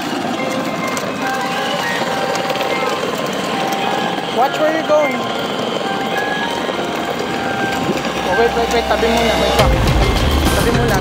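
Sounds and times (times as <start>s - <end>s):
electric toy motor running: 0.0s - 11.0s
plastic wheels rolling on asphalt: 0.0s - 11.0s.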